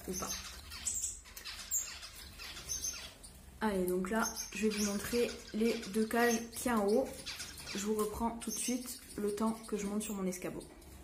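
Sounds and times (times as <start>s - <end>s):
finches chirping: 0.0s - 11.0s.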